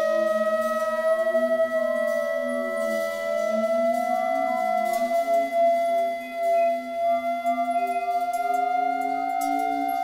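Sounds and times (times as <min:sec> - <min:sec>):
long held flute note: 0:00.0 - 0:10.0
low sustained tones: 0:00.0 - 0:10.0.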